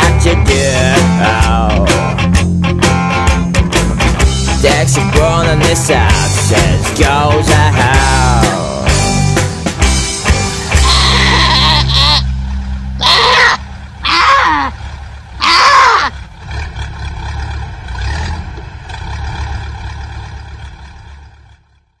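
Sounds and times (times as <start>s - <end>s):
low rumble: 0.0s - 21.9s
sheep bleating: 10.7s - 12.3s, 13.0s - 14.8s, 15.4s - 16.2s.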